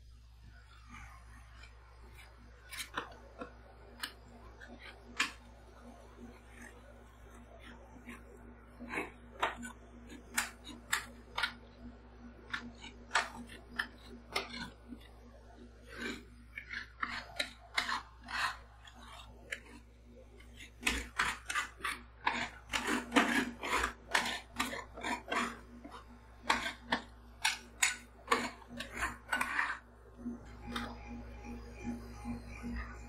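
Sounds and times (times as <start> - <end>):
metal spatulas scraping steel plate: 20.5 - 29.8.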